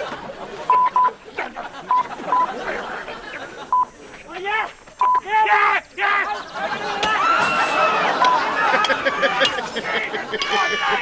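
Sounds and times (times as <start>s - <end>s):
censor bleeps: 5.0s - 5.2s.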